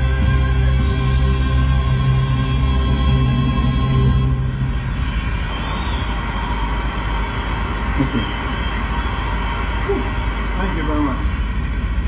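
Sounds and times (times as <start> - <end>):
background music: 0.0 - 9.1.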